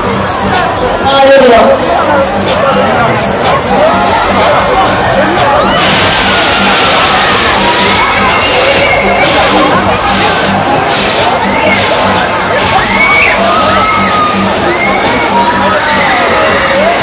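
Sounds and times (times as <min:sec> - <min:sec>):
loud music with steady beat: 0:00.0 - 0:17.0
riders screaming and shouting: 0:05.1 - 0:10.2, 0:11.4 - 0:17.0.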